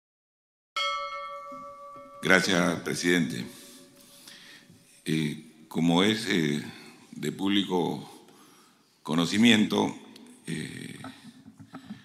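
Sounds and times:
bell-like chime ringing: 0.8s - 4.0s.

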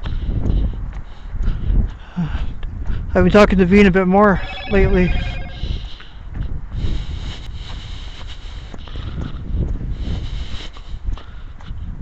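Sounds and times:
wind buffeting microphone: 0.0s - 4.3s, 5.6s - 12.0s.

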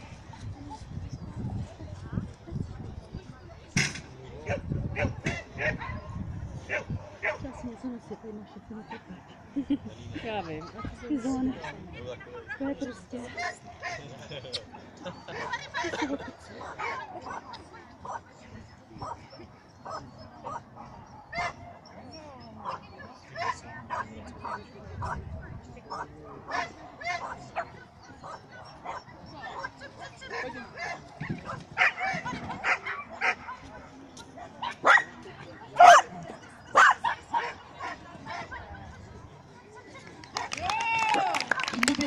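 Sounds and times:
dog barking: 4.5s - 7.6s, 19.8s - 21.6s, 34.6s - 35.1s, 35.8s - 36.1s, 36.7s - 38.5s.

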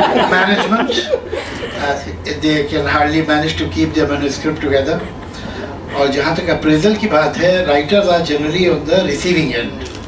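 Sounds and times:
light chuckling: 0.0s - 2.0s
man talking into a microphone: 0.0s - 5.2s, 5.9s - 9.8s.

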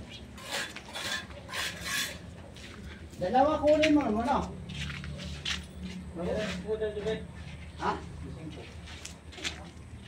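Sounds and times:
rasping scraping strokes: 0.4s - 2.3s.

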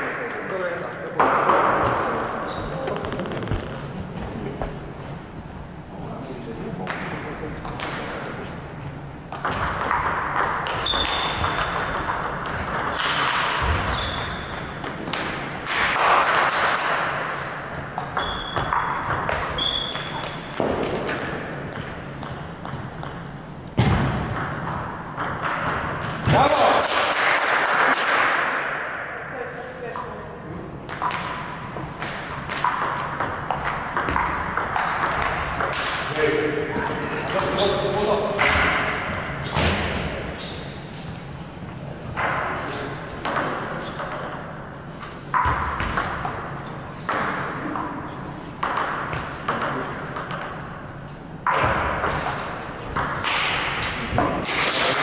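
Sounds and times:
voices in a hall: 0.0s - 9.3s, 26.2s - 30.9s, 36.0s - 45.3s
table tennis ball pings: 9.3s - 17.1s, 17.9s - 23.3s, 24.3s - 26.0s, 30.9s - 36.2s, 43.2s - 44.5s, 45.3s - 46.5s, 47.1s - 50.7s, 51.4s - 53.8s.

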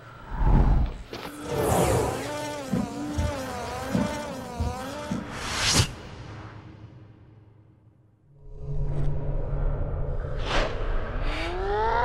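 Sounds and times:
low rumble: 8.4s - 11.3s.

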